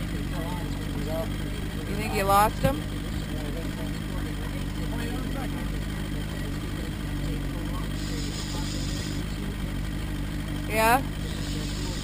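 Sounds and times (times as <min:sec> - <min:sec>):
outboard motor droning: 0:00.0 - 0:12.0.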